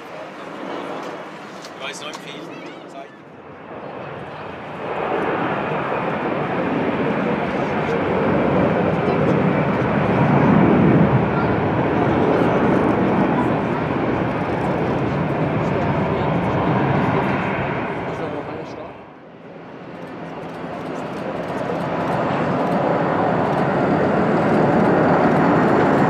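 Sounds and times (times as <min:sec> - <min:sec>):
jet engine roar at takeoff: 0:00.0 - 0:26.0.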